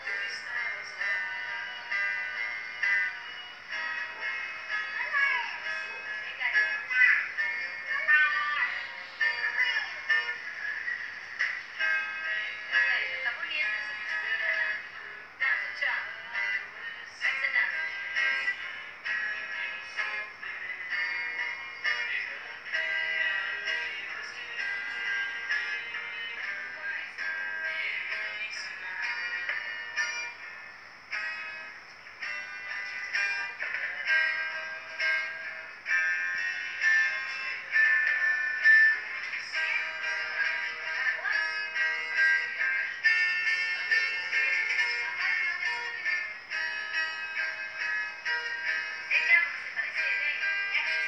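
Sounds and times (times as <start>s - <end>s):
acoustic guitar: 0.0s - 51.0s.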